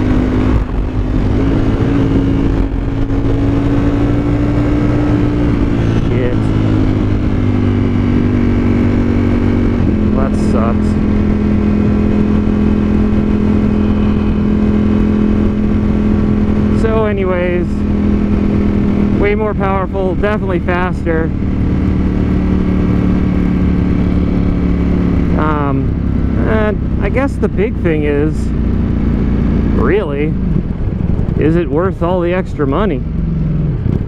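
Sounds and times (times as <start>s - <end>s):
motorcycle engine cruising: 0.0s - 34.0s.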